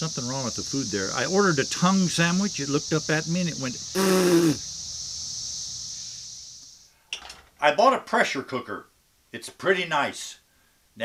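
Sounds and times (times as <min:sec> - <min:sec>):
cicadas buzzing: 0:00.0 - 0:06.9.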